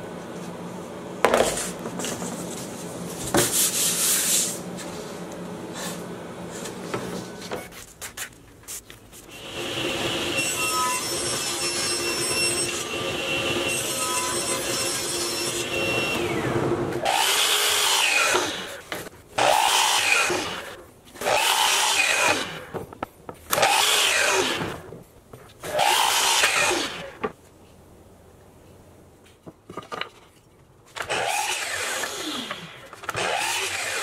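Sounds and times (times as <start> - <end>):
miter saw cutting: 9.4 - 18.8, 19.4 - 22.7, 23.5 - 24.8, 25.6 - 27.2, 31.0 - 34.0.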